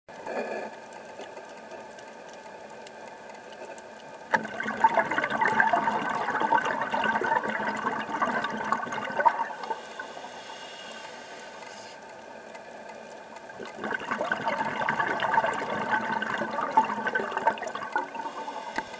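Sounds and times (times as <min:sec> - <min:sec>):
faint steady whine: 0:00.1 - 0:18.9
scuba regulator bubbling: 0:04.3 - 0:12.0, 0:13.4 - 0:18.9.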